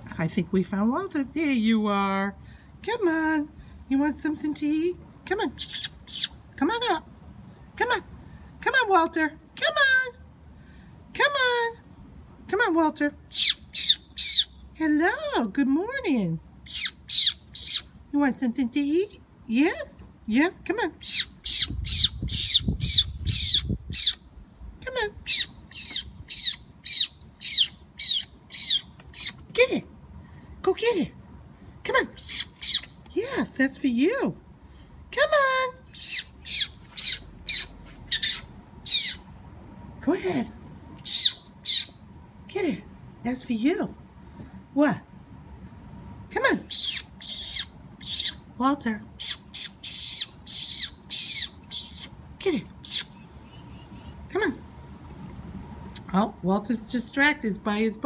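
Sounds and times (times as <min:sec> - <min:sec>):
high squeaky calls: 0:16.7 - 0:17.9, 0:25.3 - 0:29.4, 0:32.2 - 0:33.0, 0:35.8 - 0:39.2, 0:41.0 - 0:42.0, 0:46.7 - 0:48.4, 0:49.2 - 0:52.2.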